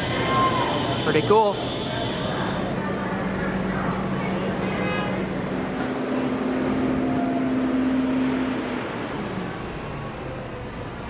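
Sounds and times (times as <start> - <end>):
second engine tone: 0.0 - 5.8
tow truck engine humming: 0.0 - 11.0.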